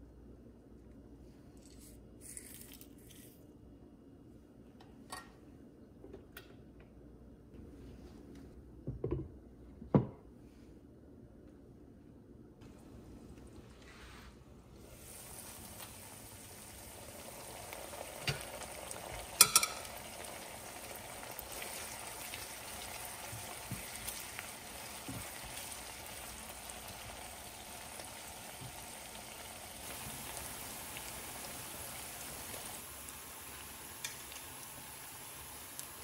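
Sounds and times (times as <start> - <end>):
onions sizzling in a frying pan: 14.8 - 36.0.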